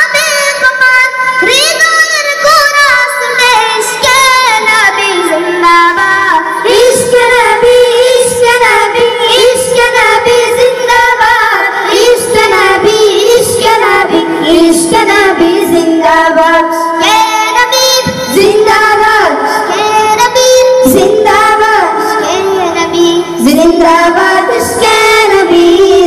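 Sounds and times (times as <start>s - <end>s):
boys singing into microphones: 0.0s - 26.0s.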